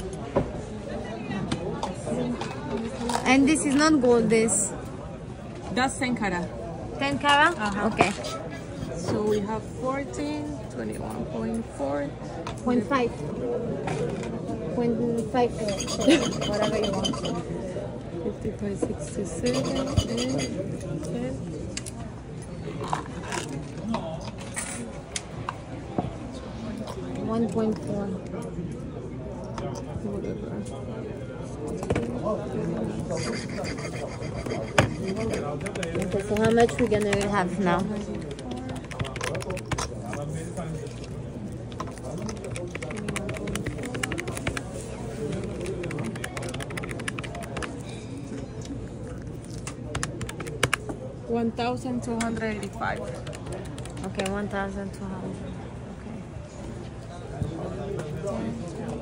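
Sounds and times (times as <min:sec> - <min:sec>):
indistinct talk: 0:00.0 - 0:59.0
items clicking on glass counter: 0:34.8 - 0:40.3, 0:41.7 - 0:48.0.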